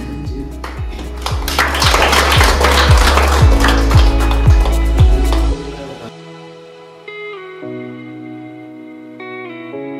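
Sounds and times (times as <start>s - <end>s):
music with deep beat: 0.0s - 6.1s
people clapping: 0.6s - 5.8s.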